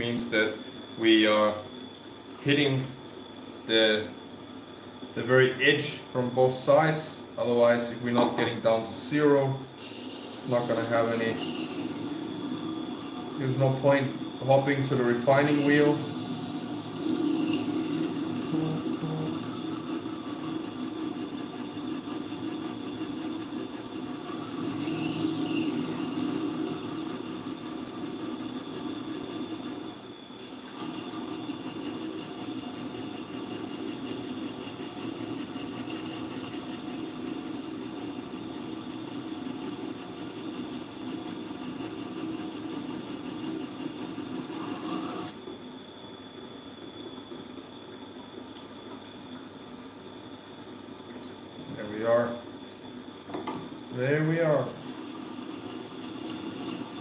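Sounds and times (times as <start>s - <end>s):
grinder machine hum: 6.4s - 45.6s, 53.9s - 57.0s
knife grinding on wheel: 9.8s - 30.0s, 41.2s - 45.4s.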